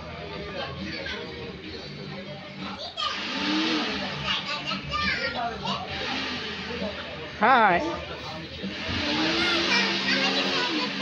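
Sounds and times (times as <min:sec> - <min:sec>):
indistinct chatter of voices: 0:00.0 - 0:11.0
children's voices: 0:02.6 - 0:06.5, 0:08.1 - 0:11.0.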